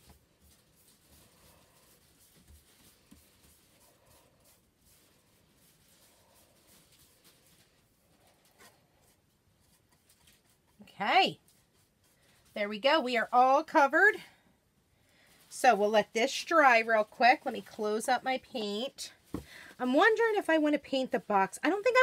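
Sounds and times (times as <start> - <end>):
paintbrush strokes on wood: 0.0 - 14.2, 15.2 - 22.0.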